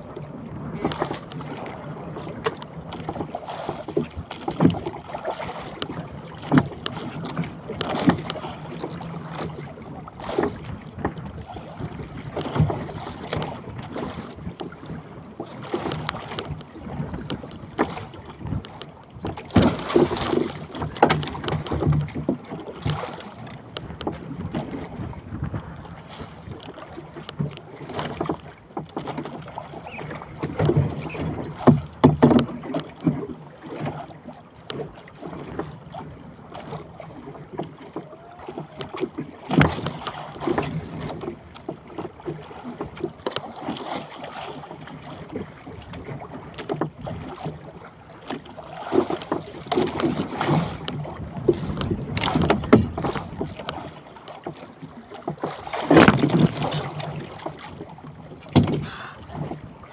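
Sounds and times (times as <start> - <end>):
wind buffeting microphone: 0.0 - 26.6
water slapping against boat: 0.0 - 59.9
sharp knocks: 58.5 - 58.9.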